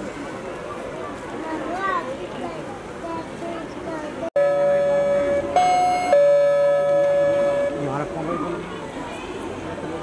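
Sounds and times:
recorded music long held note: 0:04.4 - 0:08.2.

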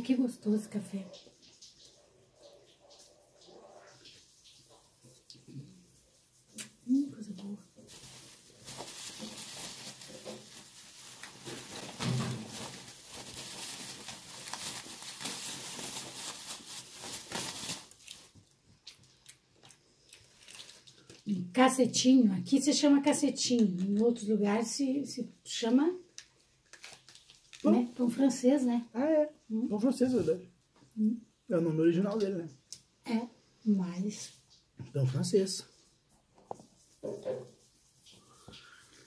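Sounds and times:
bag rustling: 0:07.8 - 0:18.4.

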